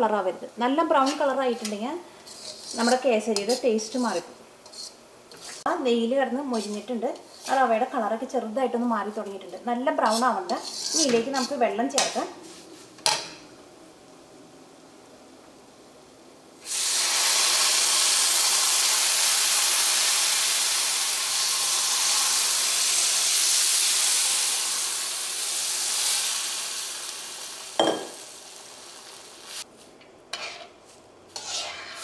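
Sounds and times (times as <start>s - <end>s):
water sizzling in hot pan: 16.6s - 29.7s.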